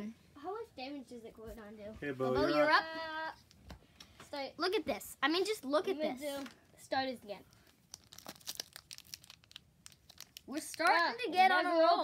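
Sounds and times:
foil wrapper tearing and crinkling: 7.6s - 11.0s.

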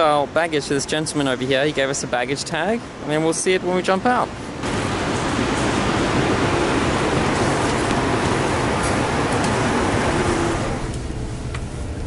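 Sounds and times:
road traffic and buses rumble: 0.0s - 12.0s.

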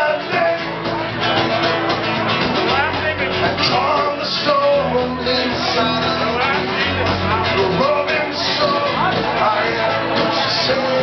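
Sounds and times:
bass and drums: 0.0s - 11.0s
strummed acoustic guitar: 0.0s - 11.0s.

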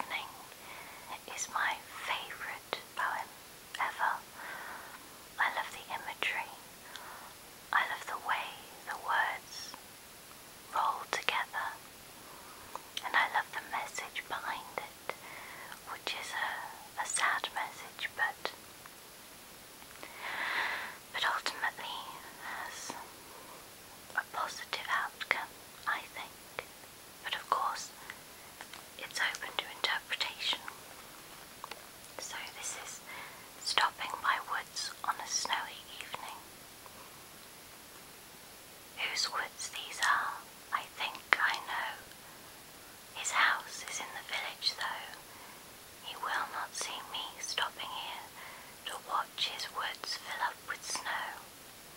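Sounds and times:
woman whispering: 0.0s - 4.4s, 5.4s - 9.8s, 10.7s - 11.8s, 13.0s - 18.6s, 20.2s - 23.1s, 24.1s - 28.1s, 29.0s - 30.8s, 32.2s - 36.5s, 39.0s - 42.2s, 43.2s - 45.2s, 46.0s - 51.5s
faint steady hiss: 0.0s - 51.9s.

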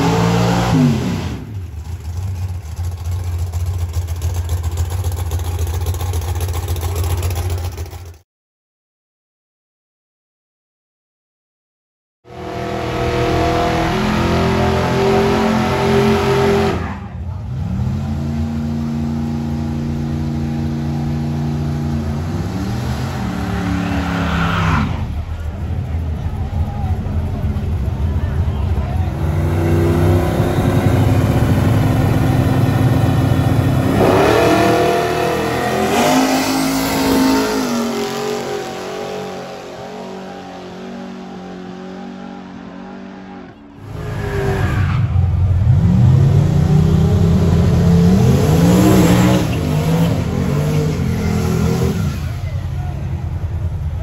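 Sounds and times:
racing car engines revving: 0.0s - 7.5s, 12.3s - 54.0s
crowd voices: 23.2s - 33.8s, 49.0s - 54.0s.

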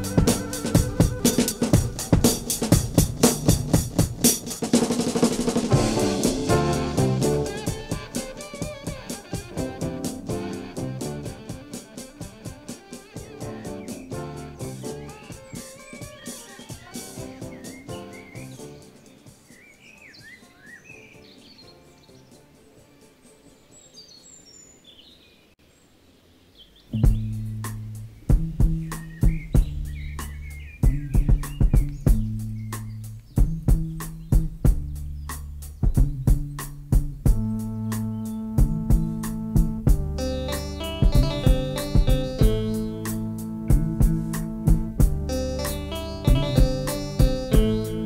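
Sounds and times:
sustained bass and chords: 0.0s - 4.5s, 5.6s - 12.0s, 13.4s - 15.2s, 27.0s - 48.0s
drum kit kick and snare hits: 0.0s - 18.0s, 27.0s - 48.0s
band music: 0.0s - 19.1s, 27.0s - 48.0s
loud music track: 0.0s - 19.1s, 37.3s - 48.0s
birds chirping: 0.0s - 48.0s.

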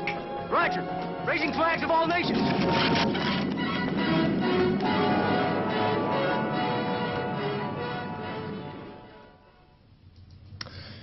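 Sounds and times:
film soundtrack music: 0.0s - 10.6s.

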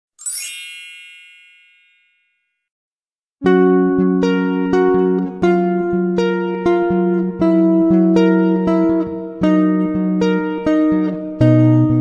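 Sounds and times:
bright high chime: 0.2s - 2.6s.

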